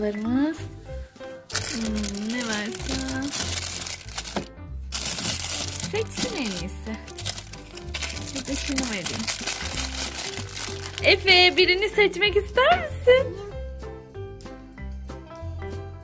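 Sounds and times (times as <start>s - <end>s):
background music with steady beat: 0.0s - 16.0s
plastic wrappers crinkling: 1.5s - 11.7s.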